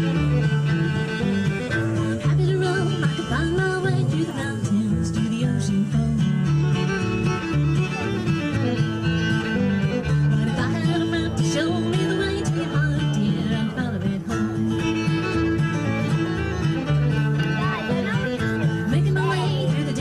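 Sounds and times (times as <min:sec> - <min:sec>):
fiddle melody: 0:00.0 - 0:20.0
strummed acoustic guitar: 0:00.0 - 0:20.0
walking upright bass: 0:00.0 - 0:20.0.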